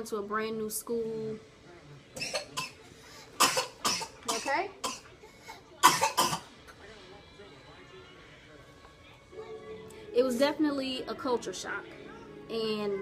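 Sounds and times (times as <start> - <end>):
woman coughing: 2.2 - 2.8, 3.4 - 6.5.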